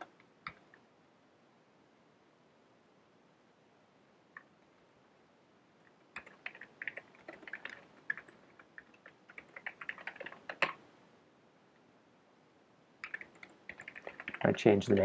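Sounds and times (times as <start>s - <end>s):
computer keyboard typing: 6.1s - 10.8s, 13.0s - 15.0s.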